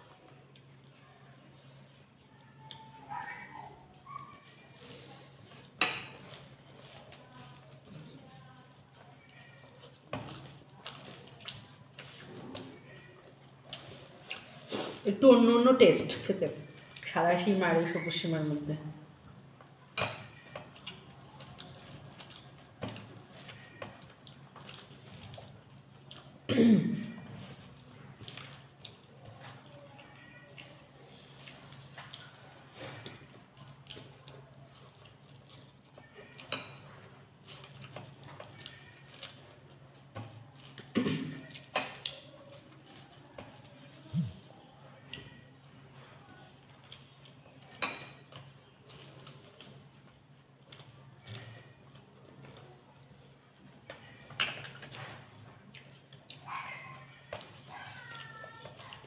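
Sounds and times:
soft chewing: 0.0 - 59.0.

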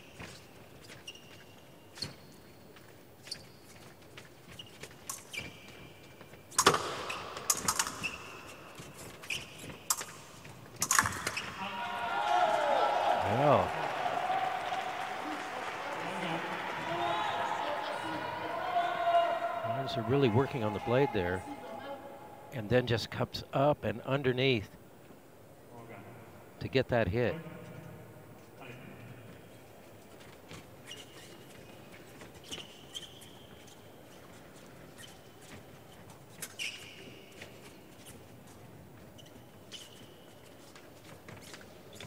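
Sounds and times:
shoe squeaks: 0.0 - 11.7, 30.5 - 42.0
fencing blade clicks: 6.6 - 8.5
people shouting and cheering: 11.6 - 22.6.

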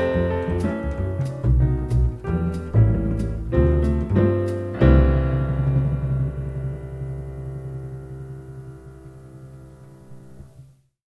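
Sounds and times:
jazz piano chord with bass: 0.0 - 10.8.

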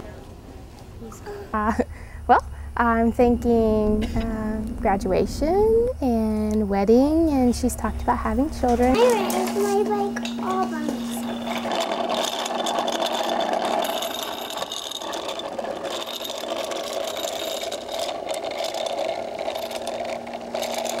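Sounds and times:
bicycle wheels whirring on concrete: 6.8 - 21.0.

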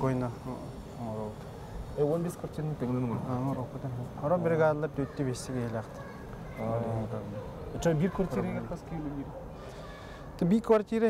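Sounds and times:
man speaking: 0.0 - 1.4, 2.0 - 6.0, 6.6 - 9.4.

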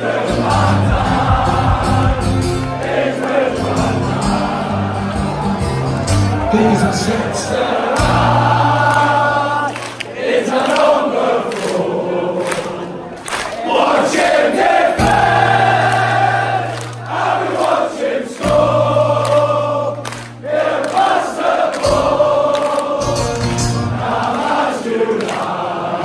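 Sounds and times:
crowd of fans singing: 0.0 - 26.0.

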